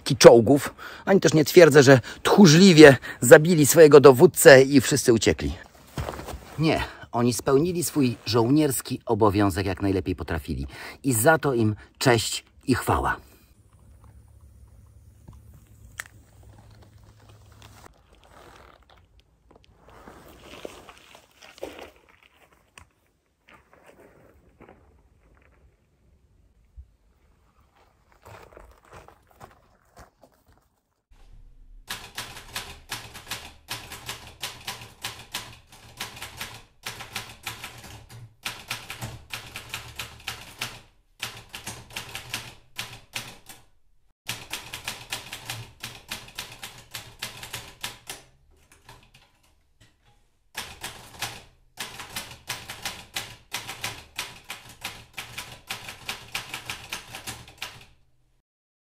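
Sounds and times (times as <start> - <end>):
typewriter keys clacking: 31.9 - 43.6, 44.3 - 49.5, 50.6 - 58.0.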